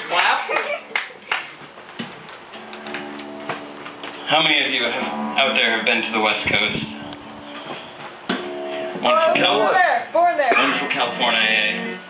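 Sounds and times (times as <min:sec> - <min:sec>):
guitar chord ringing: 0:02.5 - 0:12.0
acoustic guitar plucks: 0:02.6 - 0:12.0.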